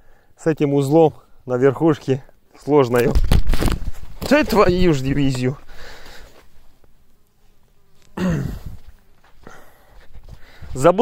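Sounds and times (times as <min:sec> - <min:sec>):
flying insect buzzing: 0:03.2 - 0:10.8.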